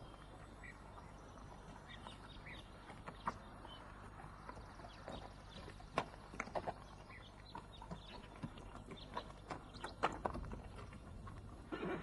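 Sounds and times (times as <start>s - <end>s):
hooves knocking on hard ground: 0.0s - 12.0s
rustle: 0.0s - 12.0s.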